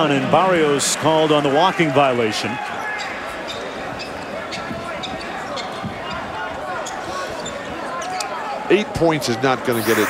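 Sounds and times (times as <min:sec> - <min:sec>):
arena crowd noise: 0:00.0 - 0:10.0.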